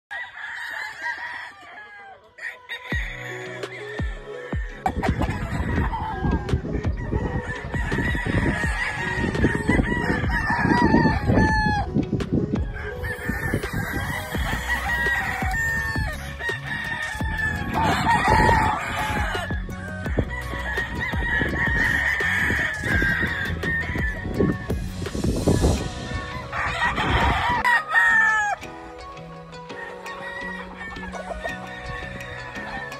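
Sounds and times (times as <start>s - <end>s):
roosters crowing: 0.1s - 32.9s.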